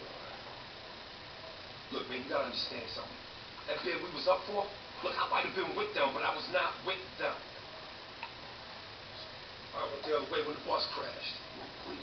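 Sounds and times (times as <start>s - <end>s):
man speaking on television: 1.9s - 7.6s, 9.2s - 12.0s.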